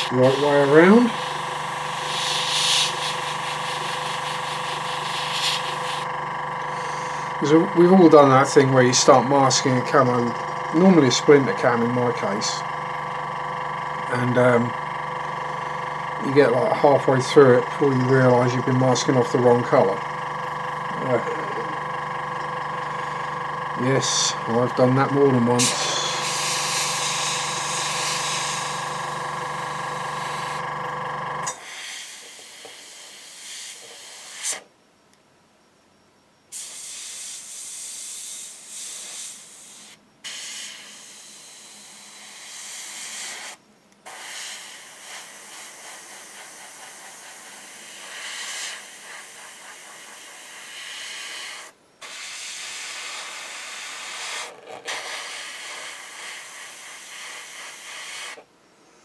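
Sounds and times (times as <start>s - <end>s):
airbrush spraying hiss: 0.0s - 6.1s, 25.6s - 29.1s, 31.5s - 34.6s, 36.5s - 58.4s
motor hum: 0.0s - 31.6s.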